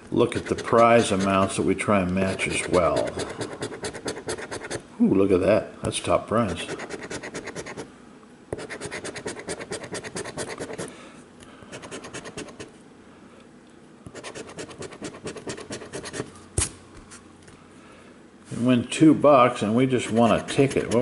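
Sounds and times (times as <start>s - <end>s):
coin scratching lottery ticket: 0.3s - 1.5s, 2.4s - 4.8s, 6.5s - 7.8s, 8.6s - 10.9s, 14.2s - 16.2s, 20.0s - 21.0s.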